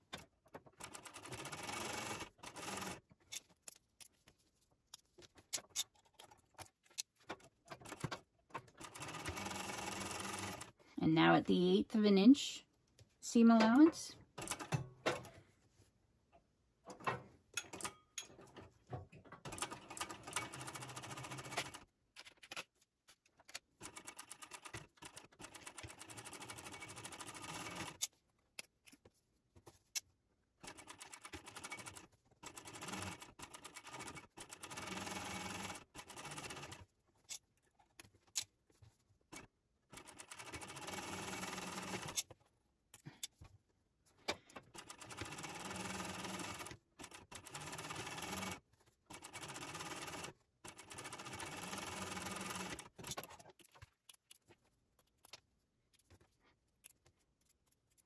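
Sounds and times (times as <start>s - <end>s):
sewing machine stitching: 0.1s - 3.0s, 7.4s - 10.8s, 19.4s - 21.8s, 23.8s - 28.0s, 30.6s - 36.8s, 39.4s - 42.3s, 44.7s - 53.7s.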